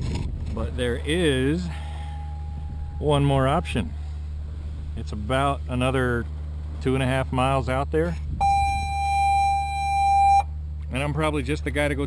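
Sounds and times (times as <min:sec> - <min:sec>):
steady low hum: 0:00.0 - 0:12.0
high electronic beep: 0:08.4 - 0:10.5.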